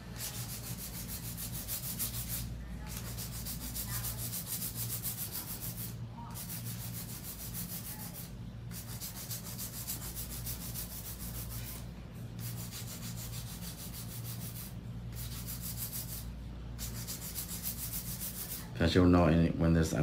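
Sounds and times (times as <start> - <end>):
hand file rasping on a nail: 0.0 - 11.8, 12.4 - 18.7.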